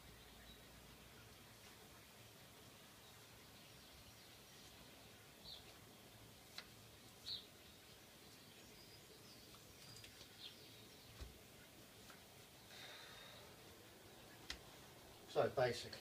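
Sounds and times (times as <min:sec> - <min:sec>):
songbird chirps: 0:00.0 - 0:16.0.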